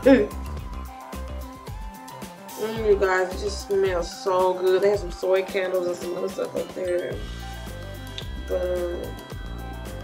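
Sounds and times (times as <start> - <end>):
person humming: 0.0 - 0.4, 8.1 - 9.8
music with beat and deep bass: 0.0 - 10.0.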